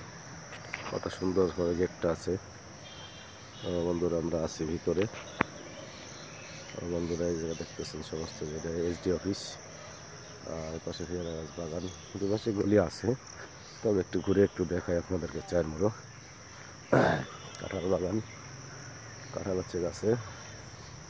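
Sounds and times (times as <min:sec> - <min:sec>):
insects droning: 0:00.0 - 0:21.0
man talking: 0:00.9 - 0:02.4, 0:03.6 - 0:05.1, 0:06.8 - 0:09.6, 0:10.4 - 0:13.2, 0:13.8 - 0:16.0, 0:17.0 - 0:18.3, 0:19.3 - 0:20.3.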